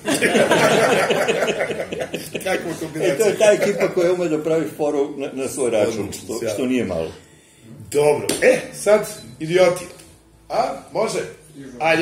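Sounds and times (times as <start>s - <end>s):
people laughing: 0.0s - 4.4s.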